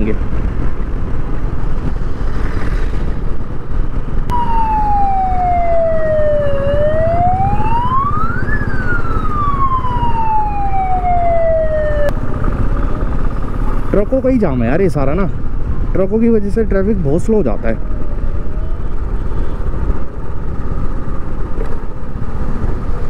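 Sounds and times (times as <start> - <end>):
ambulance siren wailing: 4.3 - 12.1.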